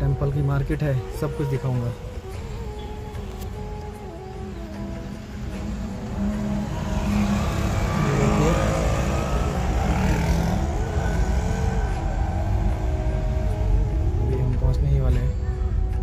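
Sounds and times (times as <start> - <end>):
road noise: 0.0 - 16.0
car engine: 4.7 - 14.7.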